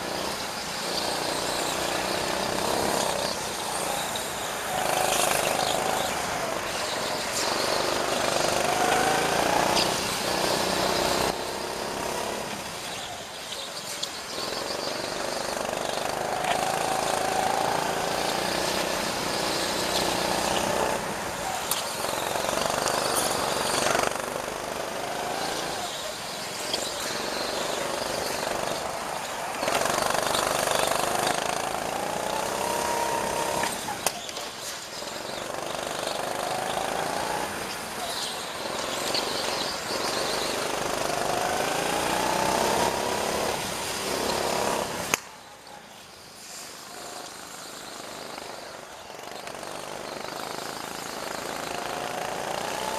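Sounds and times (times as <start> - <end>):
kart engine revving: 0.0 - 45.2, 46.8 - 52.9.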